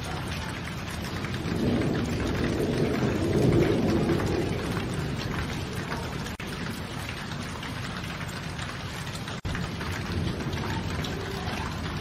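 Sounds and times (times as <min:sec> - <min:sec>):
low thunder rumble: 0:00.0 - 0:12.0
steady rain falling: 0:00.0 - 0:12.0.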